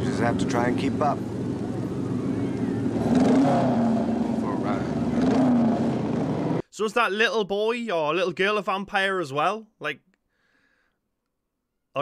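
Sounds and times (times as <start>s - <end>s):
motorcycle engines revving: 0.0s - 6.6s.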